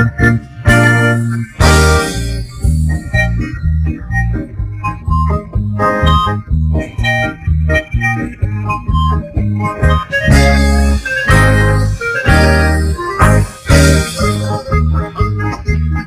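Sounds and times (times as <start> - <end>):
instrumental karaoke backing track: 0.0 - 16.0.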